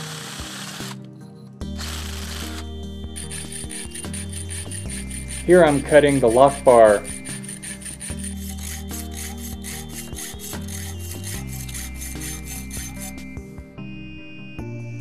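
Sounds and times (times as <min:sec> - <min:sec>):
background music: 0:00.0 - 0:15.0
hand saw rasping on steel: 0:03.2 - 0:13.3.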